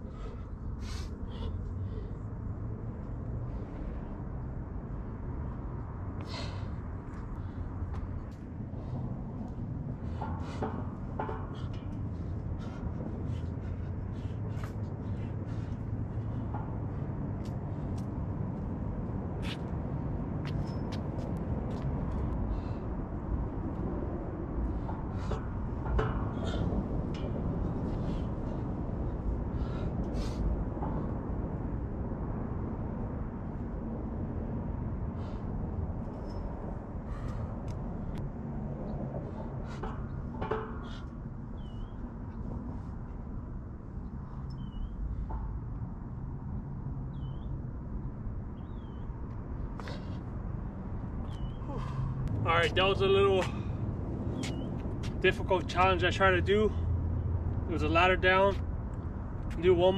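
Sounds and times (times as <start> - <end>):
steady low rumble: 0.0 - 59.9.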